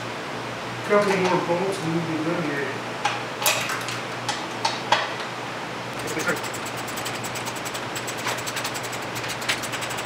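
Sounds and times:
ratchet wrench clicking rapidly: 0:06.0 - 0:10.0.

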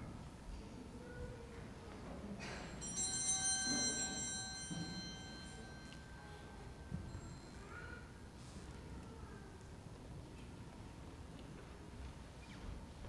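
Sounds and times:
small bell ringing: 0:02.4 - 0:08.3.

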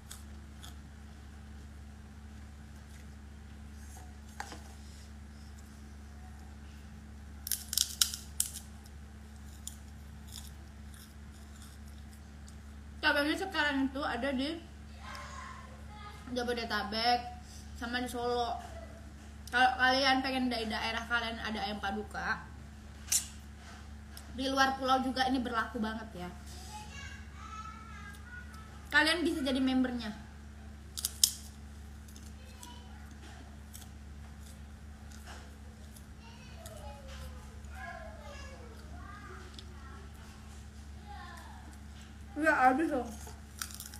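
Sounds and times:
steady low hum: 0:00.0 - 0:43.9
crisp crunching clicks: 0:07.4 - 0:12.6, 0:31.0 - 0:35.3, 0:43.2 - 0:43.9
chewing crackles: 0:07.4 - 0:12.9, 0:30.9 - 0:42.3, 0:43.0 - 0:43.9.

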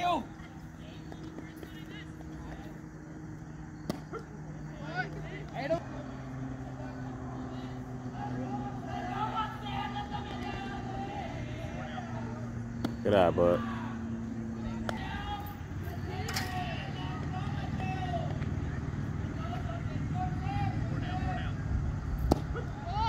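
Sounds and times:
engine running with low hum: 0:00.0 - 0:23.0
faint distant voices: 0:00.0 - 0:23.0.

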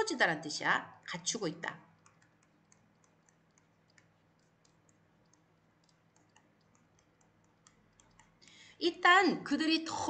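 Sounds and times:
faint low hum: 0:00.0 - 0:10.0
stylus tapping pen tablet: 0:01.0 - 0:08.6.

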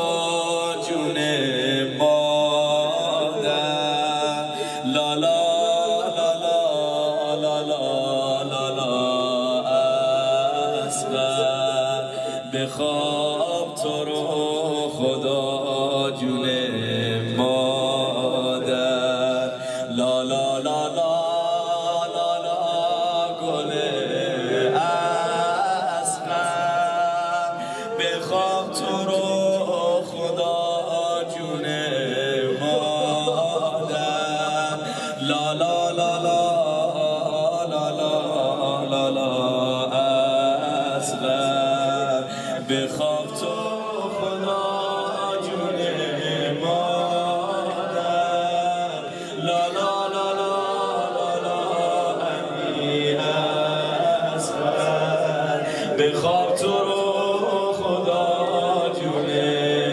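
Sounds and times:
man chanting a mournful lullaby: 0:00.0 - 0:59.9.

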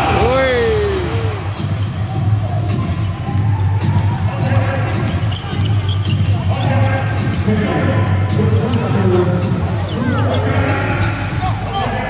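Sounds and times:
arena music: 0:00.0 - 0:12.0
crowd voices: 0:00.0 - 0:12.0
sneaker squeaks: 0:01.0 - 0:12.0
basketball bouncing on wooden court: 0:01.2 - 0:10.4.

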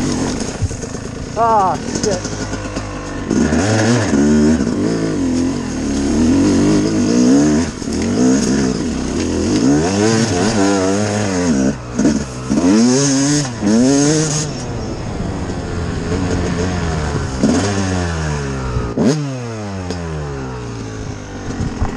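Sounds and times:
dirt bike engine revving: 0:00.0 - 0:21.9.

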